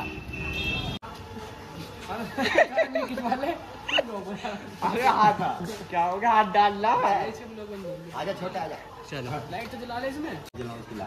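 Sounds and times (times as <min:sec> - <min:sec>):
men talking: 0:02.0 - 0:11.0.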